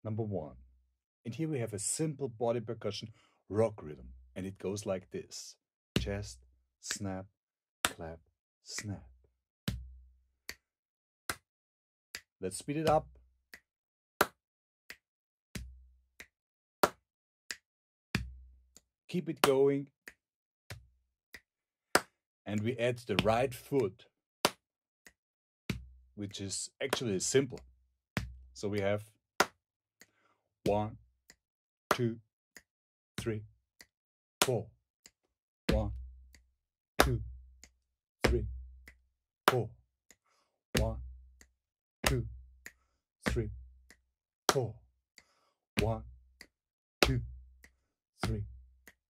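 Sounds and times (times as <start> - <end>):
hand claps: 6.9 - 7.2, 7.8 - 9.0, 11.3 - 11.5, 12.2 - 18.4, 19.1 - 27.6, 28.2 - 30.8, 31.9 - 34.7, 35.7 - 36.1, 37.0 - 39.7, 40.8 - 47.4, 48.2 - 49.0
finger snaps: 12.2 - 15.0, 15.6 - 25.8, 26.8 - 36.4, 37.0 - 40.2, 40.8 - 49.0
chest slaps: 19.4 - 19.6, 37.0 - 37.2, 38.2 - 38.5, 40.8 - 41.0, 42.0 - 42.3, 43.3 - 43.5, 44.5 - 44.7, 45.8 - 46.0, 47.0 - 47.2, 48.2 - 48.4.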